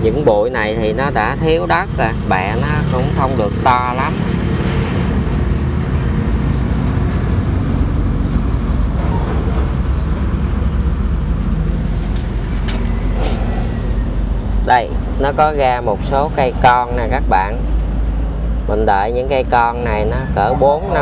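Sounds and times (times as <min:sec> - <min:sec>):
motor humming: 0:07.6 - 0:21.0.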